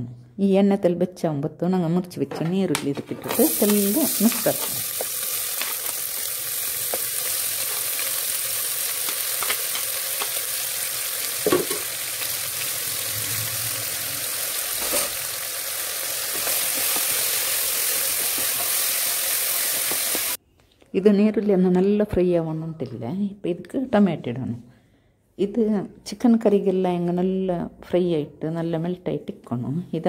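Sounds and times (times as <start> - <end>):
onions sizzling in hot oil: 3.3 - 20.4.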